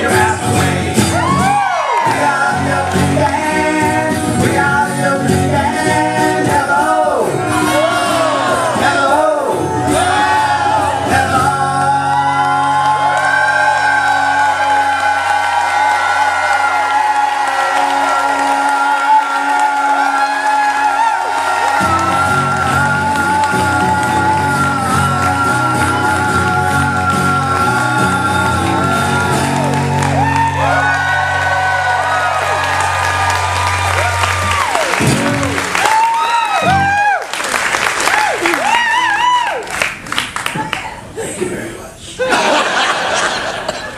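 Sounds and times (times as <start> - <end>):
audience applause and cheering: 0.0 - 4.2, 7.1 - 41.2
strummed acoustic guitar: 0.0 - 12.4
men singing long note: 0.0 - 32.4.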